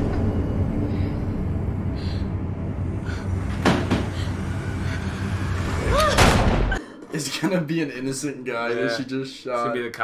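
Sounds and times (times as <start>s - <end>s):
low ominous drone: 0.0s - 7.1s.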